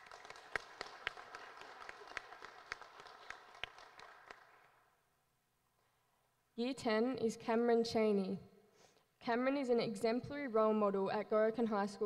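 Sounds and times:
thin applause: 0.0s - 4.9s.

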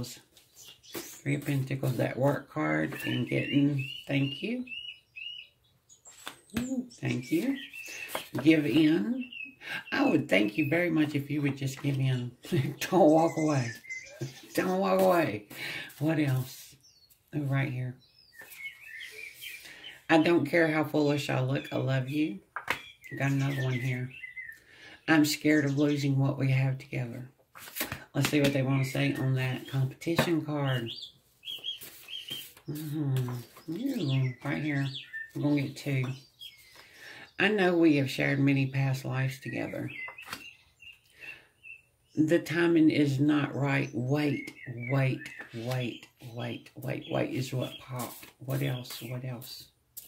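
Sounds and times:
small bird twittering: 0.4s - 1.6s, 2.8s - 10.8s, 13.0s - 14.7s, 18.0s - 20.1s, 22.6s - 24.7s, 30.7s - 36.9s, 39.7s - 42.2s, 43.8s - 46.3s.

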